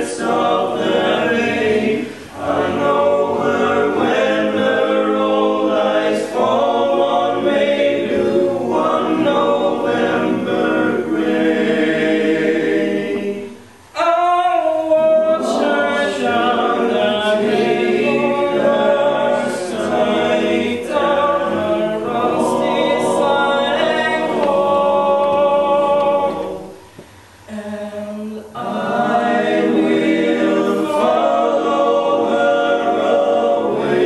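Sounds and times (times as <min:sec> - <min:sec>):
choir singing a cappella: 0:00.0 - 0:34.0.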